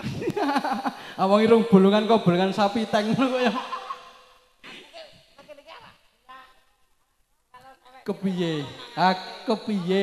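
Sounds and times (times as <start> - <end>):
people talking: 0.0 - 4.1, 4.7 - 6.6, 7.5 - 10.0.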